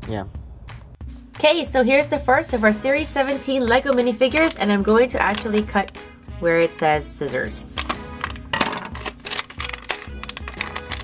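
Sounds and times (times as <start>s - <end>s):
background music: 0.0s - 11.0s
plastic foil packet crinkling: 3.7s - 6.1s, 7.7s - 11.0s.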